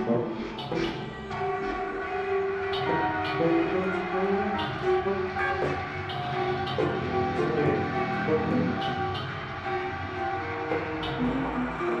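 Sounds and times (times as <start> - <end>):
bowed cello: 0.0 - 12.0
tenor saxophone: 2.1 - 12.0.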